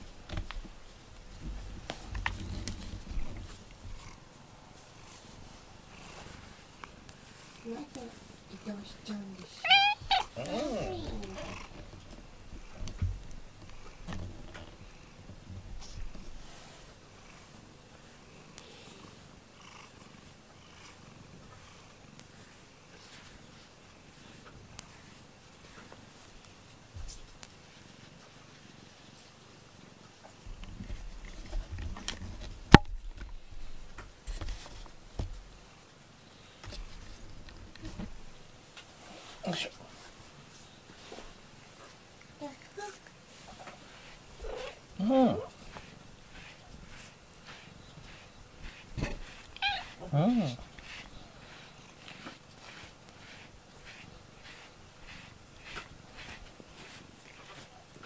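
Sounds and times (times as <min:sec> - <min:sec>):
cat purring: 0:01.8 - 0:25.2, 0:41.0 - 0:58.0.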